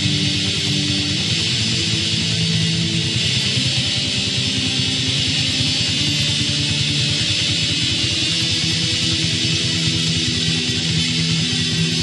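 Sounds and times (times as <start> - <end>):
distorted electric guitars: 0.0 - 12.0.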